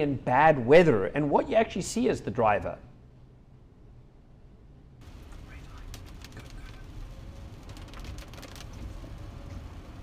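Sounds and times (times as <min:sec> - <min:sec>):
car road rumble: 0:05.0 - 0:10.0
rain clicks and patter: 0:05.0 - 0:10.0.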